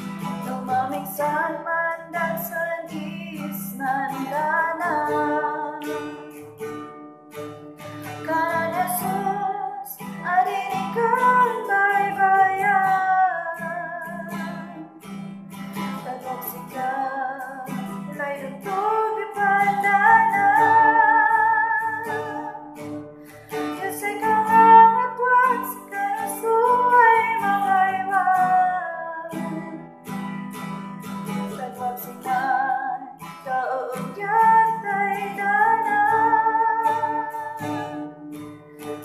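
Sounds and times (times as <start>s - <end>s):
strummed acoustic guitar: 0.0s - 39.0s
woman singing gospel song: 0.5s - 6.0s, 8.2s - 14.8s, 16.0s - 22.8s, 23.8s - 29.8s, 31.5s - 37.6s.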